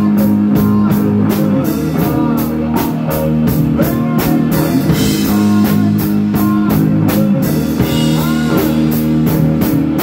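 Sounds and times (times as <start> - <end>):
electric guitar chords: 0.0 - 10.0
rock band playing: 0.0 - 10.0.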